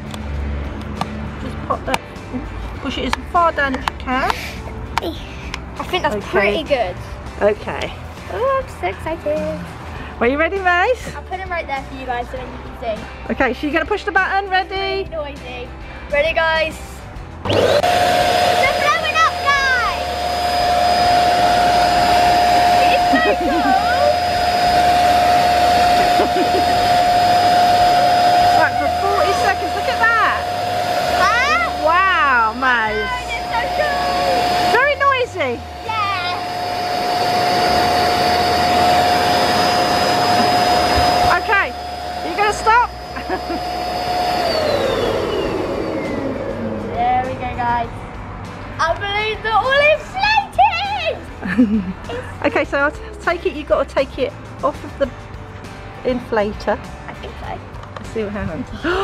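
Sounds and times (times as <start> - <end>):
electric pump whining: 17.4 - 47.6.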